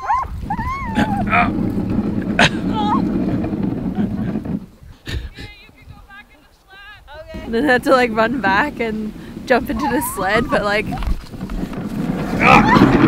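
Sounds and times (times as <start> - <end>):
huskies whining and yipping: 0.0 - 3.1, 9.7 - 11.2
camera rubbing against clothing: 7.3 - 12.4.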